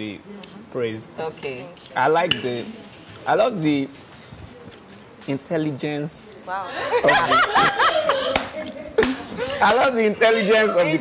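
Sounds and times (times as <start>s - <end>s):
people laughing: 6.7s - 10.0s.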